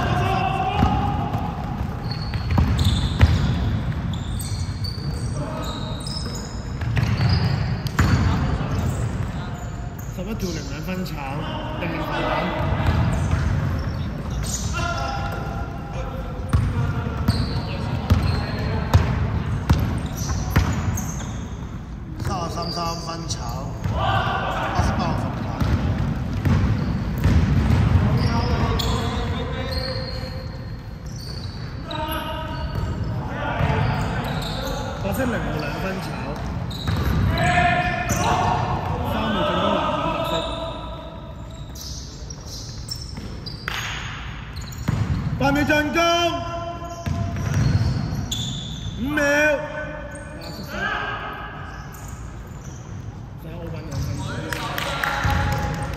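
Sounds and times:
players calling out: 0.0 - 21.6, 22.2 - 43.0
basketball bouncing on wooden floor: 0.8 - 4.2, 6.8 - 8.4, 25.3 - 28.2, 44.8 - 45.3, 47.0 - 48.1.

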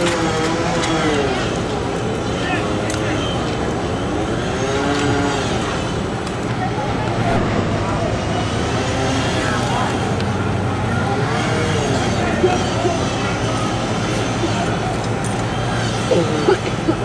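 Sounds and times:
engine droning: 2.9 - 17.0
indistinct voices calling: 6.4 - 17.0.

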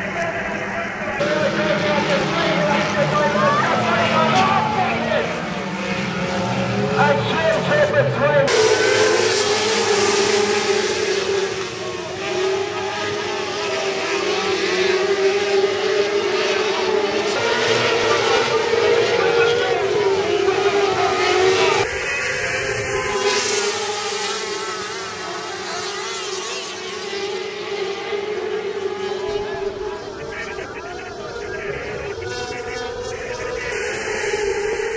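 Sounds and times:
sprint car engines racing: 0.0 - 34.9.

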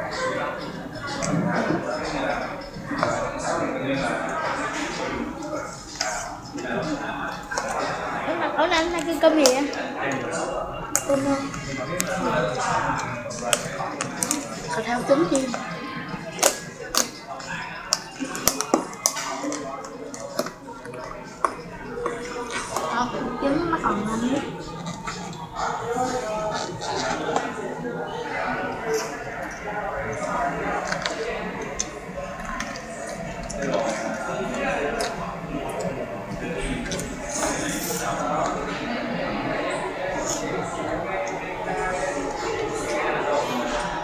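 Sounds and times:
background chatter: 0.0 - 44.0
background voices talking: 0.0 - 44.0.

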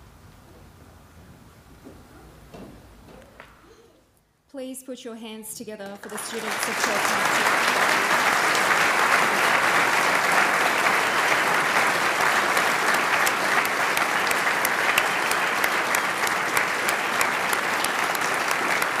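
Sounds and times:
crowd applauding: 6.0 - 19.0.

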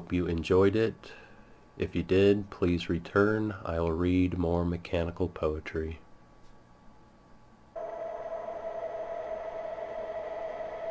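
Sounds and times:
steady electronic tone: 7.8 - 10.9.

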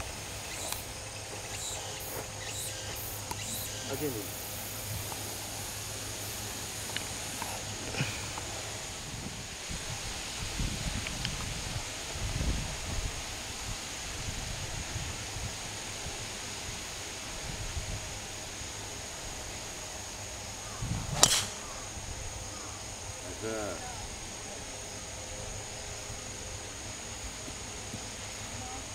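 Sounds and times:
golf club swing whoosh: 21.0 - 21.8
golf ball struck: 21.1 - 21.8.

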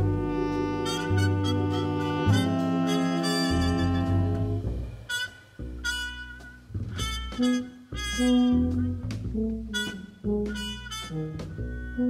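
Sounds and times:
double bass notes: 0.0 - 12.0
jazz big band playing: 0.0 - 12.0.

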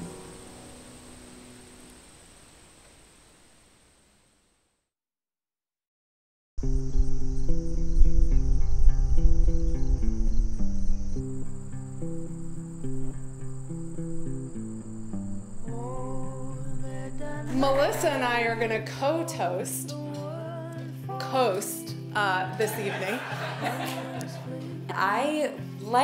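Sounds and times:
high insect trill: 0.0 - 3.7, 6.6 - 18.8
soft instrumental music: 6.6 - 26.0
person speaking: 17.2 - 18.9.

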